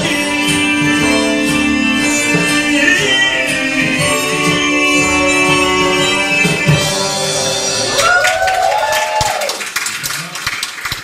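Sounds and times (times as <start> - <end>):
audience applauding: 7.9 - 11.0.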